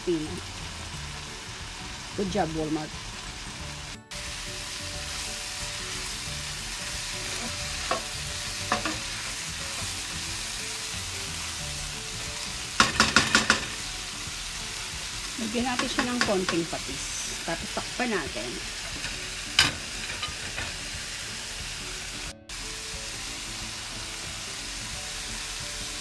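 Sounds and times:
food sizzling in a frying pan: 0.0 - 26.0
spatula scraping and clacking on pan: 7.2 - 9.9, 12.7 - 13.9, 15.7 - 16.7, 18.8 - 20.8.

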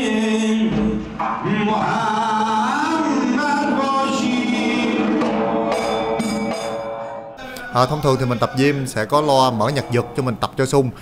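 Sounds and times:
person chanting through a microphone: 7.1 - 11.0.

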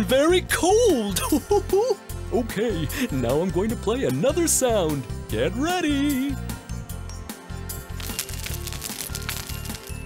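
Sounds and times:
soft children's music: 0.0 - 10.0
fire crackling and popping: 7.8 - 10.0.

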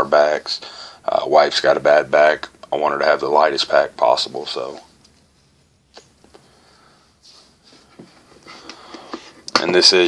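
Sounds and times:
soft rustling: 4.6 - 9.4.

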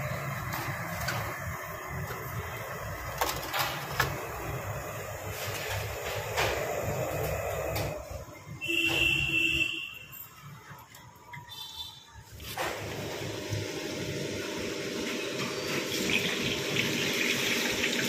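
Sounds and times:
street stall background noise: 0.0 - 18.0
loud steady tone: 4.4 - 10.2.

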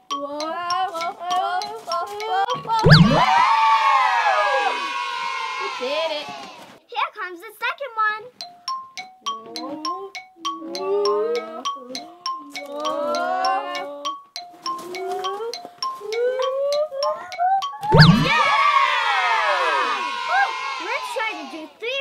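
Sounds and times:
children's music with ticking beat: 0.0 - 3.8, 8.2 - 19.2
children shrieking and cheering: 2.8 - 6.8, 16.7 - 22.0.

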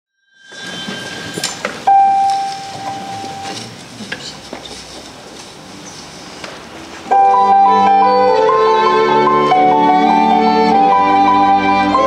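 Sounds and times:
steady high note: 0.5 - 3.6
folding chairs knocking and clinking: 0.6 - 5.0
murmur of crowd: 1.6 - 7.2.

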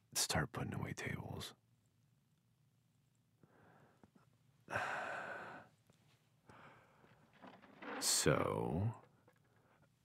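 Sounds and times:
person sighing: 4.7 - 5.7.

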